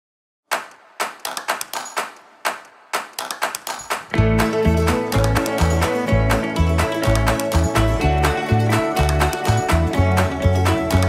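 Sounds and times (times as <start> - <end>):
clap-like percussive hits: 0.5 - 11.0.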